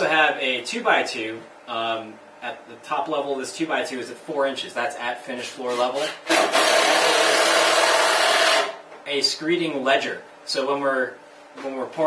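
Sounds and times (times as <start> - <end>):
power tool rasping: 5.7 - 8.8.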